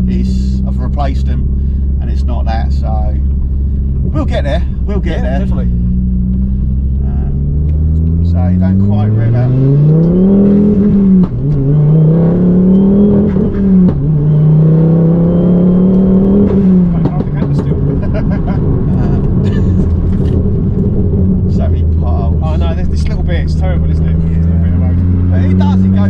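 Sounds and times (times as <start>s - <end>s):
car engine accelerating through gears: 0.0s - 26.0s.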